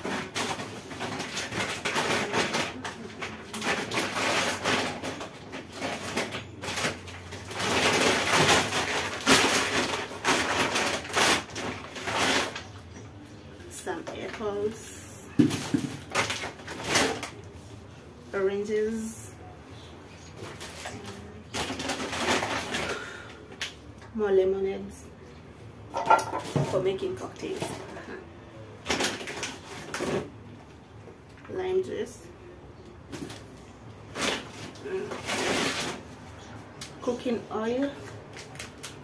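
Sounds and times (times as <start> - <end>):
plastic bag rustling: 0.0 - 18.0, 19.8 - 23.5, 25.9 - 28.2, 28.8 - 30.5, 33.1 - 39.0.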